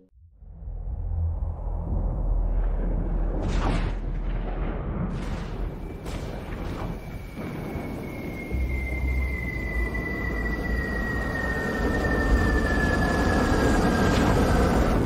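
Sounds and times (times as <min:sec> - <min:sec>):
dark rumbling drone: 0:00.0 - 0:15.0
whistling tone sliding downward: 0:05.7 - 0:15.0.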